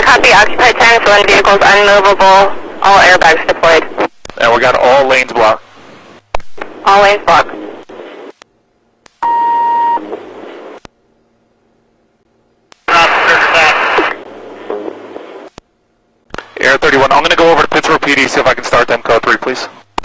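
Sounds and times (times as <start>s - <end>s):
radio static hiss: 0.0s - 8.5s, 9.1s - 10.9s, 12.8s - 15.6s, 16.3s - 20.0s
steady beep tone: 9.2s - 10.0s.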